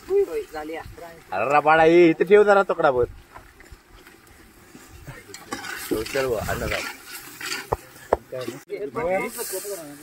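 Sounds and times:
people talking: 8.2s - 10.0s.

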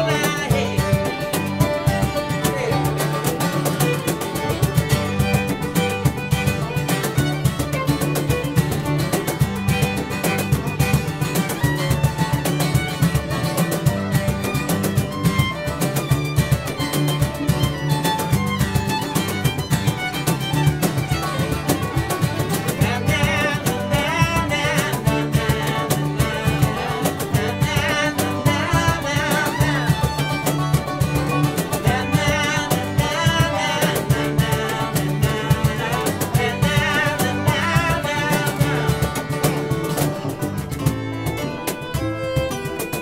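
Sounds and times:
acoustic guitar: 0.0s - 43.0s
banjo picking: 0.0s - 43.0s
fiddle: 0.0s - 43.0s
upright bass: 0.0s - 43.0s.

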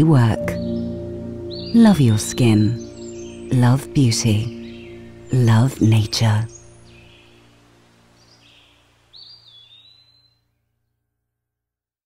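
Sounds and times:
soft music: 0.0s - 9.4s
faint outdoor ambience: 0.0s - 10.7s.

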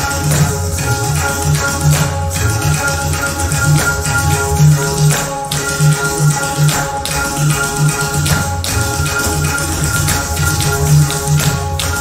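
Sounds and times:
ankle bells jingling: 0.0s - 12.0s
held melodic notes: 0.0s - 12.0s.

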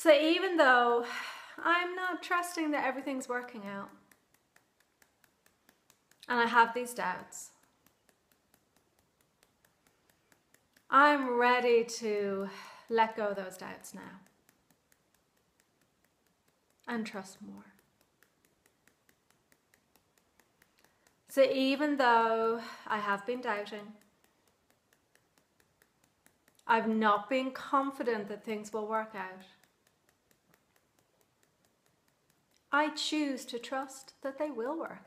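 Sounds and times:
fingertips tapping on hand: 2.2s - 35.0s.

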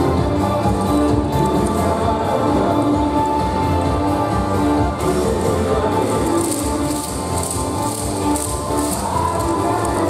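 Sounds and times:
upbeat dance music: 0.0s - 10.0s
wooden clappers rattling: 6.1s - 10.0s.

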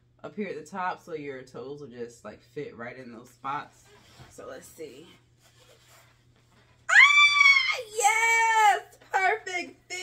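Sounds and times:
woman's high exclamation: 6.9s - 9.0s.

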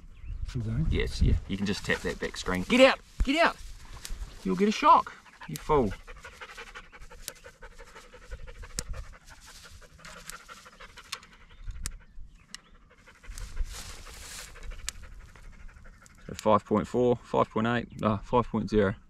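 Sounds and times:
dog panting: 1.3s - 3.0s, 3.7s - 16.6s
sharp ticks: 3.9s - 16.9s.

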